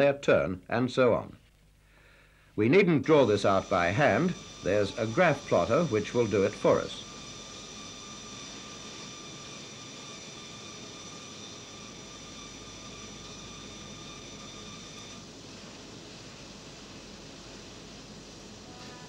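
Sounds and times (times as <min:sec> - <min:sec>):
thin high whine: 0:02.1 - 0:19.0
plotter whirring and hissing: 0:02.4 - 0:19.0.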